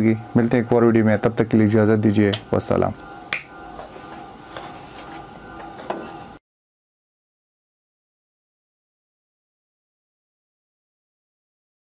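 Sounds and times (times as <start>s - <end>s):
faint steady hum: 0.0s - 6.4s.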